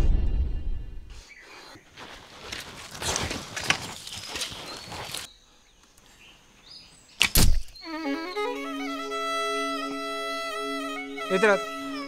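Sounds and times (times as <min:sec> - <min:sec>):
feet scrambling over rocks: 0:01.8 - 0:05.3.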